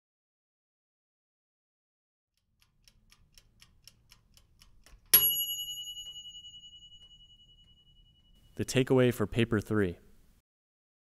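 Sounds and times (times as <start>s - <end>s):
ticking: 2.4s - 8.8s
bell ding: 5.1s - 8.9s.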